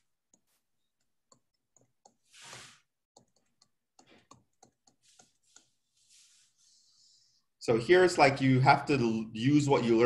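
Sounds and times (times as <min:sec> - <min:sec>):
computer keys clicking: 0:03.2 - 0:05.7.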